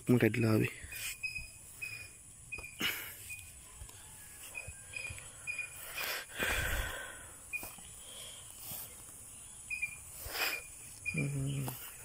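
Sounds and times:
insects: 0.0 - 12.0
steady high hiss: 5.2 - 12.0.

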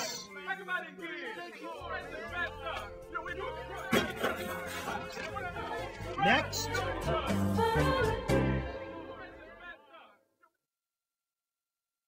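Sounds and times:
indistinct voices chattering: 0.0 - 7.9.

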